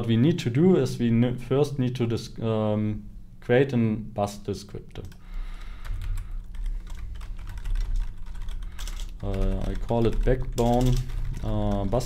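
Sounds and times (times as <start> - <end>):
low steady hum: 0.0 - 12.0
typing on computer keyboard: 5.0 - 12.0.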